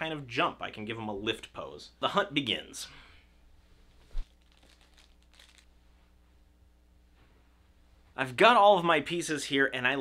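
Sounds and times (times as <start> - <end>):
rustling and shuffling on floor: 3.6 - 6.4.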